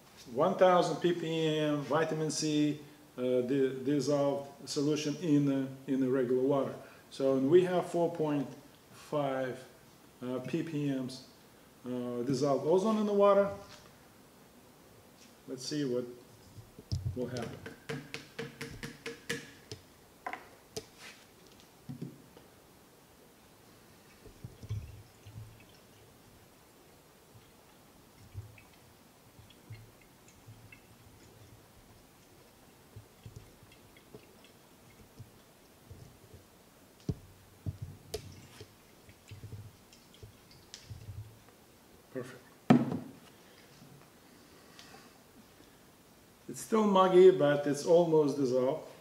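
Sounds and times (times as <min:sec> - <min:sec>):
liquid swirling in flask: 0:24.0 - 0:26.5, 0:27.4 - 0:36.5.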